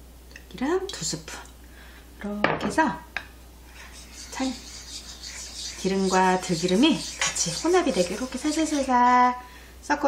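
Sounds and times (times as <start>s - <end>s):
wooden spoon scraping a pan: 3.6s - 9.4s
person speaking: 4.0s - 5.0s, 5.6s - 9.4s.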